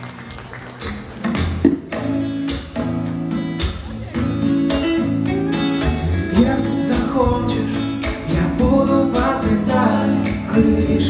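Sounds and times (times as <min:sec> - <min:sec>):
electric guitar notes and chords: 0:00.8 - 0:11.0.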